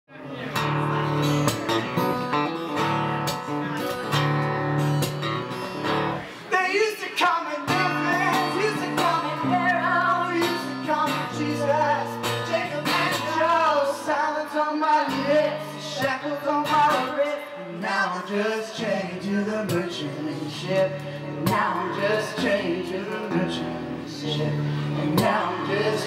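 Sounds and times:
guitar strumming chords: 0.3 - 6.4, 7.6 - 17.8, 19.5 - 26.0
man singing: 6.4 - 26.0.

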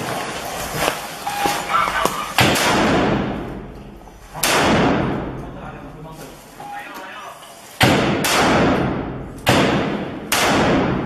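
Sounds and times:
gunshots echoing: 1.8 - 5.4, 7.8 - 11.0.

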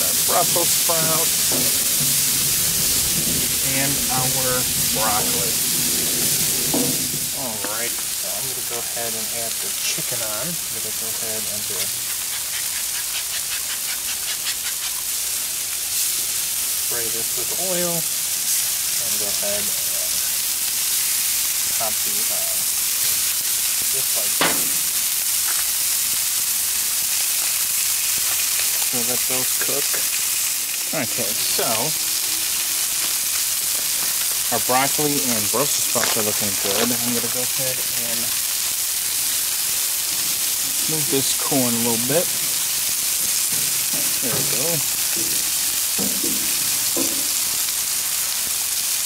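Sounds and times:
food sizzling on griddle: 0.0 - 49.0.

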